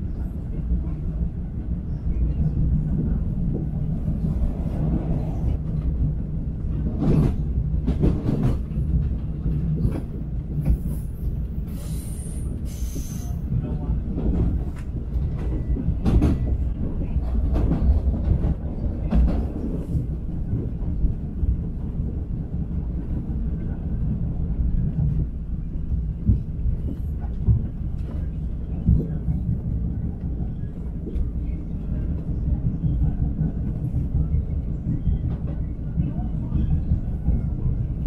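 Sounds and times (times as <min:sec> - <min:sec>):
train rumble: 0:00.0 - 0:38.0.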